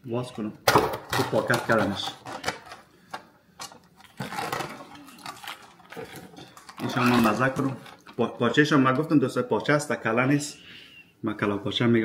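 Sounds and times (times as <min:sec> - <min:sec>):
plastic wrapping crackling: 0:00.9 - 0:09.1.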